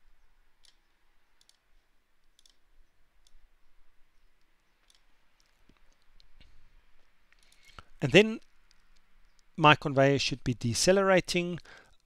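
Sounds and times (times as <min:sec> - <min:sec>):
faint computer mouse clicks: 0:00.6 - 0:01.6, 0:02.2 - 0:02.6, 0:04.4 - 0:06.5, 0:07.3 - 0:09.5.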